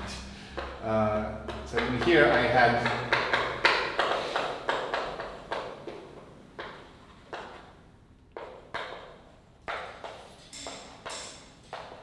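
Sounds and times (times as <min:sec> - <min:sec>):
chalk tapping on blackboard: 0:00.5 - 0:07.6, 0:08.4 - 0:12.0.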